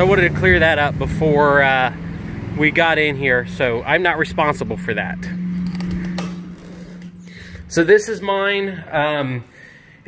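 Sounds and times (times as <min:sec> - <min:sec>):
steady low hum: 0:01.9 - 0:10.0.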